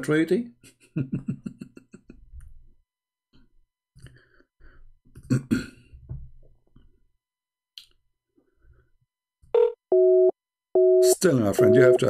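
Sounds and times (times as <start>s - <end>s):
pulsing telephone busy tone: 9.6s - 12.0s
short electronic beep: 10.0s - 12.0s.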